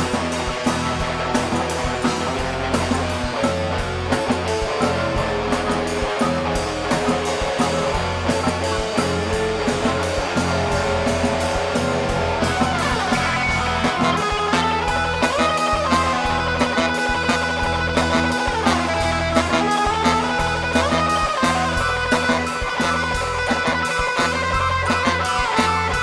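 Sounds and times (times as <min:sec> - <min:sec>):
drum kit beat: 0:00.0 - 0:26.0
electric guitar: 0:00.0 - 0:26.0
funk band playing: 0:00.0 - 0:26.0.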